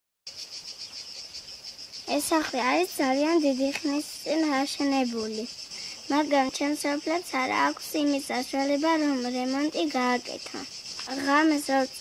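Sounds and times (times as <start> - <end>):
insects chirring: 0.3 - 12.0.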